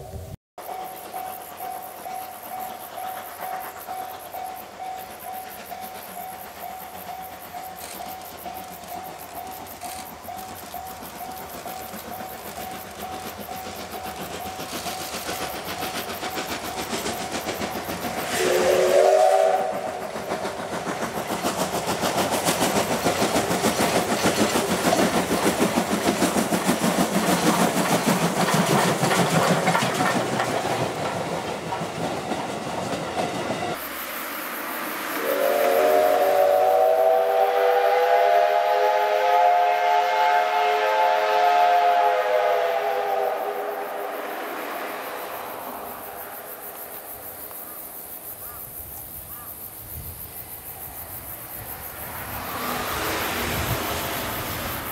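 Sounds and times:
steam locomotive exhaust beats: 0.0 - 54.9
coaches clattering over rails: 0.6 - 34.2
steam whistle blast: 18.3 - 20.1, 35.1 - 44.2.

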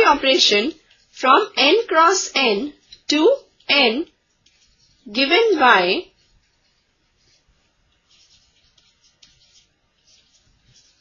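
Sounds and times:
stylus scratching on tablet: 0.0 - 11.0.

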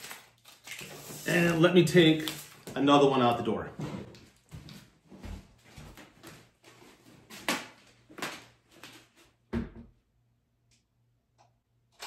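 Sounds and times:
footsteps on wooden floor: 3.7 - 7.1.

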